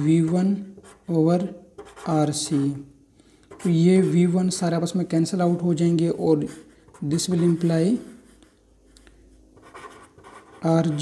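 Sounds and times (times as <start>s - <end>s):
pen scratching on paper: 0.1s - 1.2s, 1.8s - 2.7s, 6.3s - 8.6s, 9.6s - 11.0s
man speaking: 10.6s - 11.0s.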